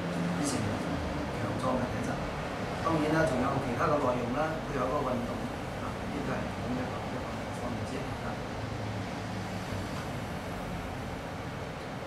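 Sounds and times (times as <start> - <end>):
low rumbling room hum: 0.0 - 12.0.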